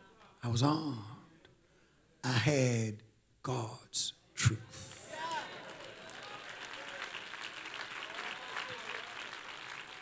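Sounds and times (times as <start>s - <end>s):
light applause: 4.8s - 10.0s.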